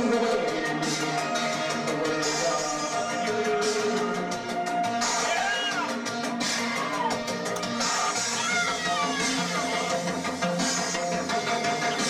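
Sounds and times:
electronic beat: 0.0s - 12.0s
synthesizers: 0.0s - 12.0s.

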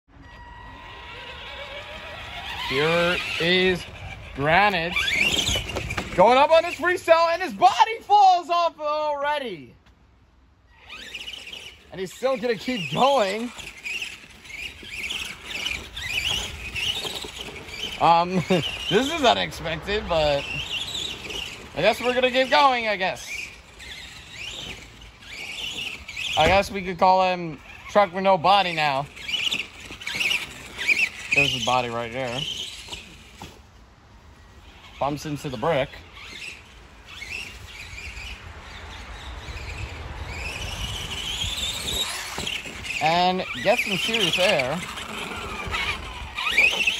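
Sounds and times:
rc truck electric motor whining: 0.2s - 8.3s, 10.6s - 46.9s
low rumble of driving on grass: 11.0s - 46.9s.

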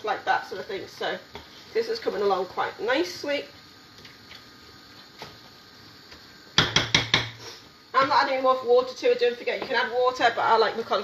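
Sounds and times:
spatula knocking metal saucepan: 6.6s - 7.4s.

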